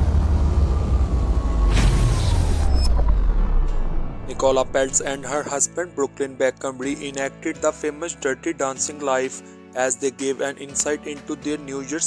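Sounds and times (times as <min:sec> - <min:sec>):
faint falling tone: 0:00.0 - 0:05.2
deep rumble: 0:00.0 - 0:05.3
whoosh: 0:00.0 - 0:05.3.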